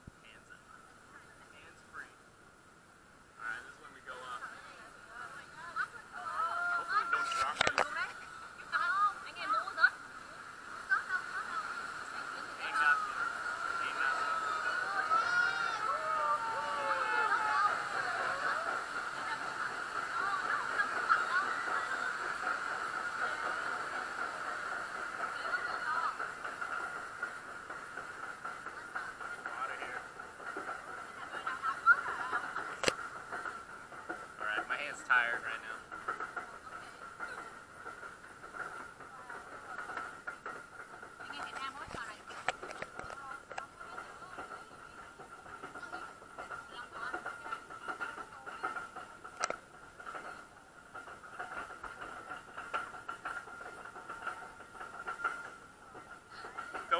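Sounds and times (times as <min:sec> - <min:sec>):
muffled riders' voices and calls: 0:00.1 - 0:56.9.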